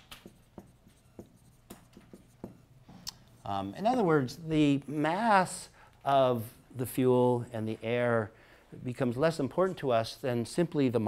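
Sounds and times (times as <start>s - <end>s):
marker writing on whiteboard: 0.0s - 4.1s.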